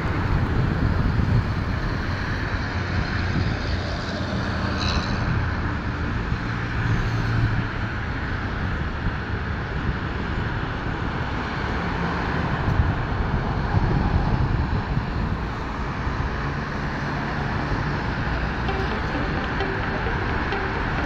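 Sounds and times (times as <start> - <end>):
low hum of engines: 0.0 - 21.0.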